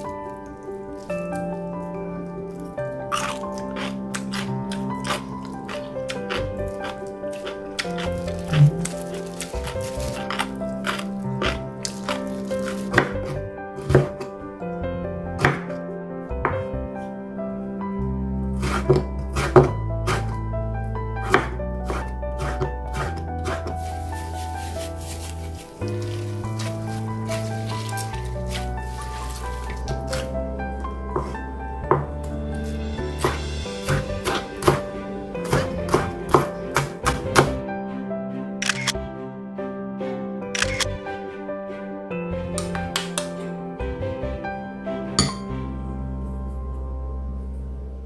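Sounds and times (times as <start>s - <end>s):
background music: 0.0s - 48.0s
knife chopping on cutting board: 9.6s - 14.2s, 15.4s - 15.7s, 18.6s - 20.3s, 21.2s - 25.3s, 31.1s - 37.6s
knife slicing on cutting board: 18.6s - 20.3s, 21.2s - 30.3s, 32.6s - 34.8s.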